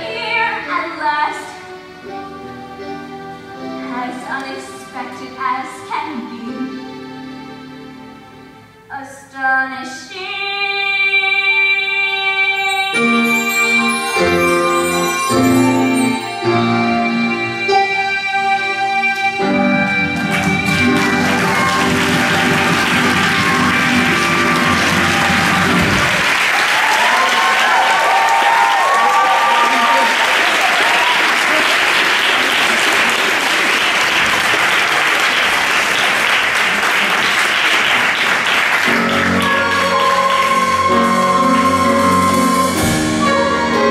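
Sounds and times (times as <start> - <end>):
instrumental music: 0.0 - 26.7, 38.6 - 43.9
audience applauding: 19.8 - 41.9
shouted cheers: 21.0 - 31.9.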